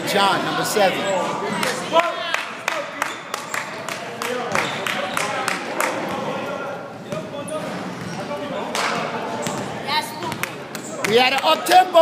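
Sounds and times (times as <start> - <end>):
players' voices: 0.0 - 12.0.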